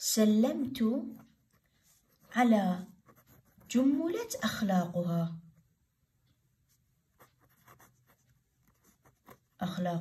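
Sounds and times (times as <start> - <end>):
person speaking: 0.0 - 5.6
marker scratching on paper: 1.0 - 4.4, 6.7 - 9.8.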